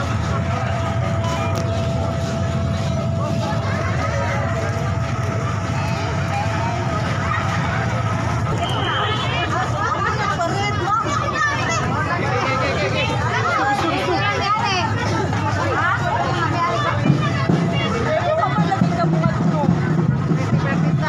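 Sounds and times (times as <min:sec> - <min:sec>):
crowd chatter: 0:00.0 - 0:21.0
motorcycle engines running: 0:00.0 - 0:21.0.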